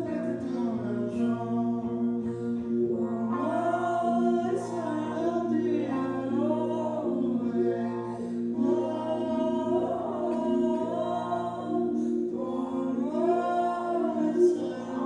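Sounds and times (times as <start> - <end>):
guitar accompaniment: 0.0 - 15.0
woman singing slow notes: 0.0 - 15.0.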